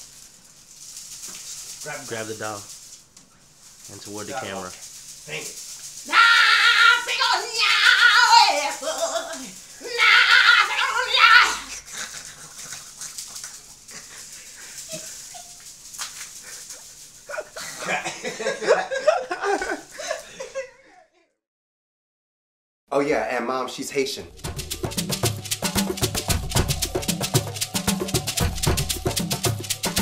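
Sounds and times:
person crying out high-pitched: 6.1s - 11.8s
person laughing: 11.7s - 15.6s, 16.5s - 21.3s.

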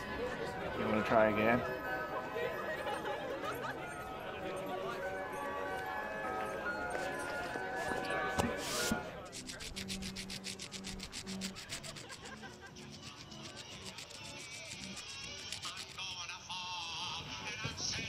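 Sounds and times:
carnival music: 0.0s - 17.6s
people chattering: 0.0s - 18.0s
fast even ticking: 9.4s - 16.2s.

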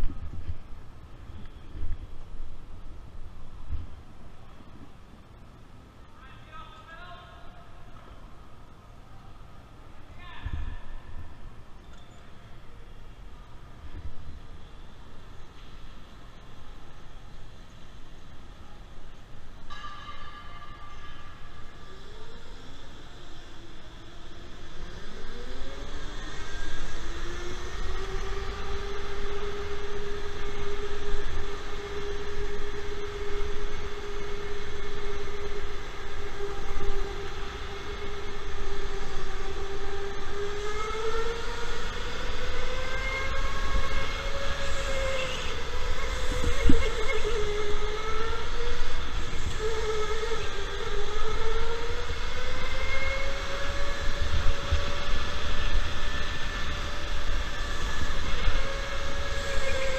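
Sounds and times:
electric go-kart motor whining: 20.8s - 59.9s.

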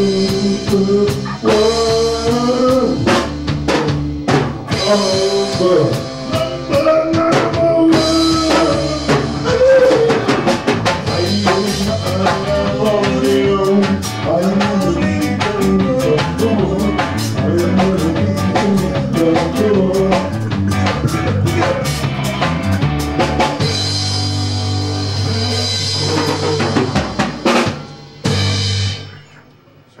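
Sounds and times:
drum hits: 0.0s - 24.5s, 25.2s - 29.0s
live rock band playing: 0.0s - 29.3s
cymbals ringing: 3.4s - 9.7s.

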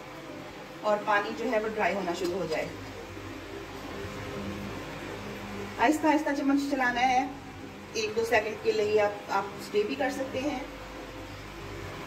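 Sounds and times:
kitchen fan whirring: 0.0s - 12.0s.

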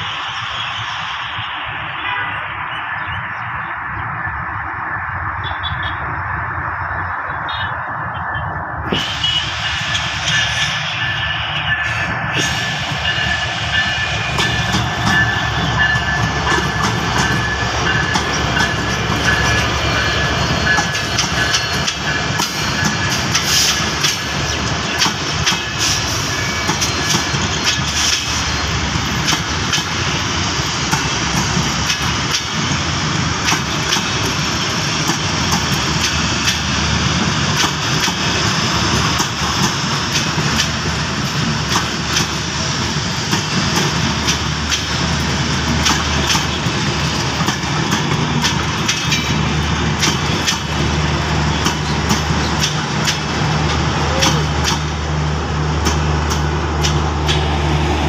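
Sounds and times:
diesel locomotive passing: 0.0s - 58.0s
train wheels clicking over rail joints: 8.9s - 57.8s.

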